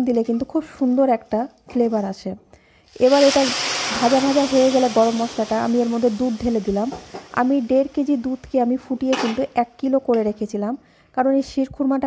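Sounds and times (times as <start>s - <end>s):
woman talking: 0.0s - 2.4s, 3.0s - 12.0s
short hiss: 2.8s - 8.4s
spices sizzling in oil: 2.8s - 9.8s.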